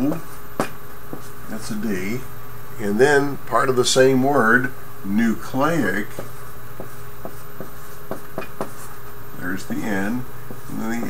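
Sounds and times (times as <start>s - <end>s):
marker writing on a whiteboard: 0.0s - 1.4s, 5.8s - 11.0s.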